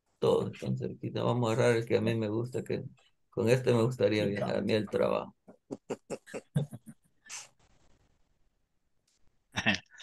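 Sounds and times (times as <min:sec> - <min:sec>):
person chuckling softly: 0:05.5 - 0:07.4.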